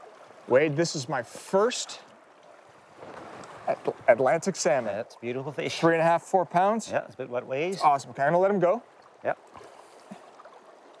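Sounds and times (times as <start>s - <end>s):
man talking: 0.5s - 2.1s, 3.6s - 9.4s.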